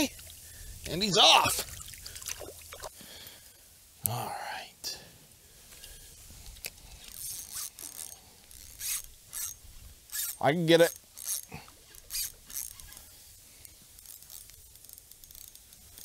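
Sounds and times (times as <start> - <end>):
handling rustling and clicks: 5.8 - 16.0.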